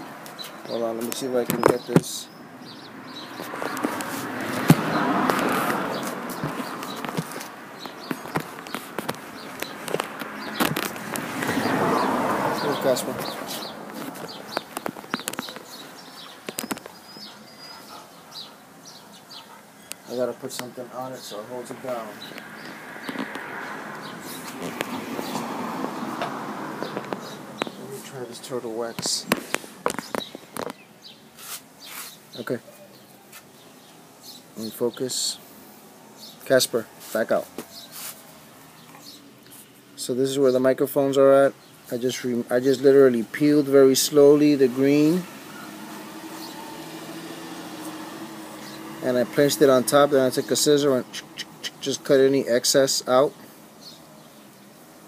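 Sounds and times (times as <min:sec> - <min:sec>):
scraping rustles: 0:03.2 - 0:32.4, 0:36.9 - 0:39.9
sponge rubbing on microphone: 0:31.4 - 0:32.2, 0:37.8 - 0:38.3.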